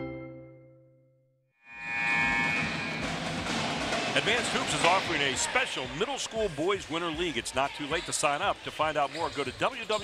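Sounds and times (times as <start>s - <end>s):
drums: 2.1s - 8.6s.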